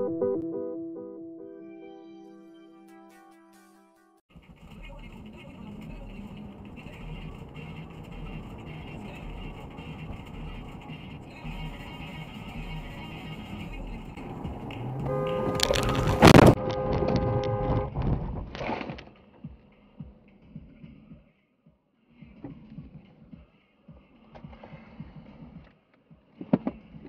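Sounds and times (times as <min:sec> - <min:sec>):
road and engine noise inside car: 0:05.1 - 0:18.2
car horn: 0:07.0 - 0:18.0.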